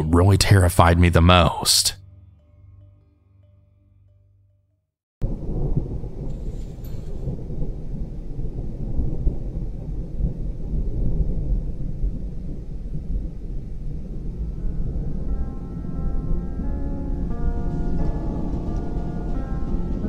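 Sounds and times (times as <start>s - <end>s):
rain: 5.2s - 16.4s, 17.2s - 20.0s
deep rumble of thunder: 5.2s - 20.0s
soft music tones: 14.4s - 20.0s.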